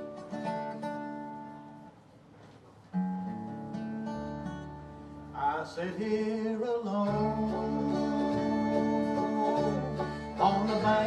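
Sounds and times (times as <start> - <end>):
bluegrass band playing: 0.0 - 1.7, 6.0 - 11.0
strummed acoustic guitar chords: 0.0 - 2.0, 2.8 - 11.0.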